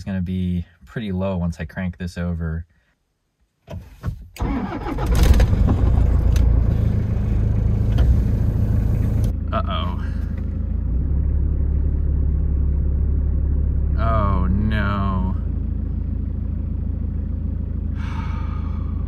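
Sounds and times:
diesel engine cranking: 4.4 - 19.0
diesel engine idling: 4.5 - 19.0.

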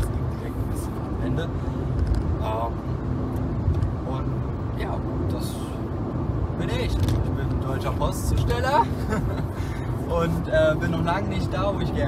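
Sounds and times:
car engine and road rumble: 0.0 - 12.0
man talking: 10.0 - 12.0.

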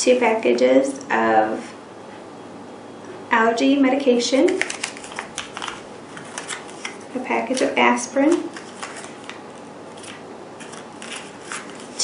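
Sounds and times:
medicine packets crinkling: 4.5 - 12.0.

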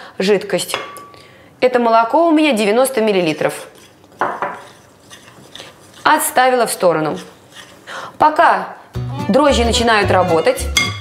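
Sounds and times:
metal spoon stirring in glass bowl: 3.1 - 7.9.

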